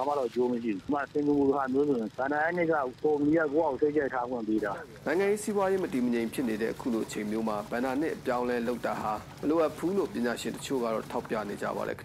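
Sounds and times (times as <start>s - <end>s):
news voice-over speech: 0.0s - 12.0s.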